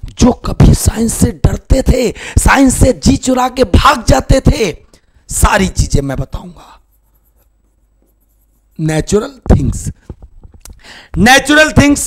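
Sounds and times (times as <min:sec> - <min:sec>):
low steady hum: 0:00.0 - 0:11.2
man talking: 0:00.1 - 0:06.9, 0:08.8 - 0:10.0, 0:11.2 - 0:12.0.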